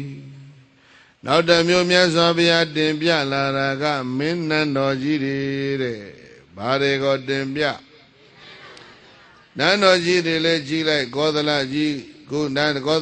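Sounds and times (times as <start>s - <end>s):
man chanting: 0.0s - 8.1s, 9.6s - 13.0s.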